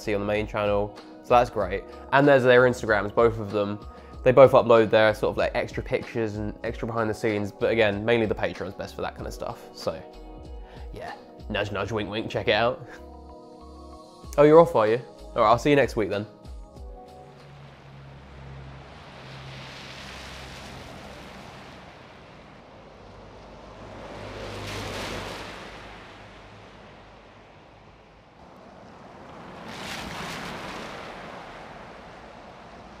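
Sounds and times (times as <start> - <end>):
rushing surf-like noise: 17.1 - 33.0.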